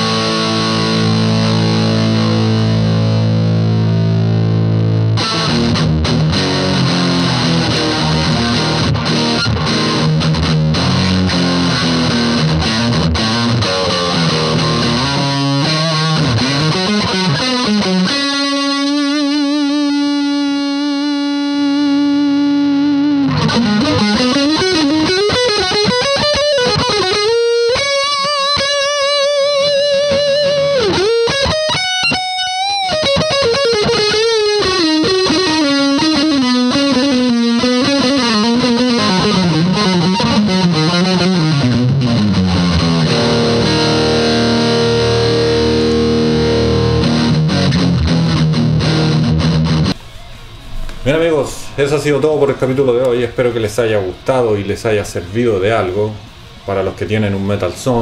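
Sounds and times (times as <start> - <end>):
distorted electric guitar lead: 0.0 - 58.0.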